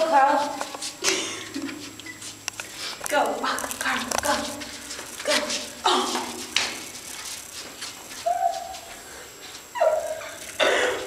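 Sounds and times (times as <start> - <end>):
dog whining: 8.2 - 8.9, 9.7 - 10.4.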